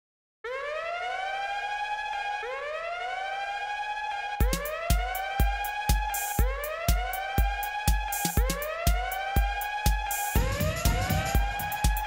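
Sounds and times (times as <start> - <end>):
siren wail rising in pitch: 0.4 - 12.0.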